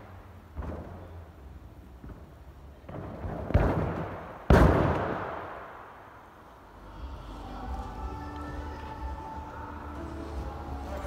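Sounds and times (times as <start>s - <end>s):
gymnast landing thuds: 0.5s - 1.2s.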